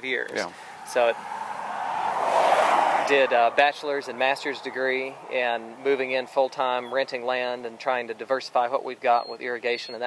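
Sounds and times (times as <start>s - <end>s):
car tyre noise passing: 0.4s - 7.3s.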